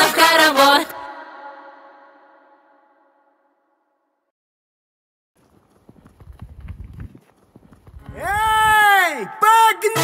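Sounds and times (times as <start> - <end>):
horse hooves clip-clopping: 5.4 - 8.8.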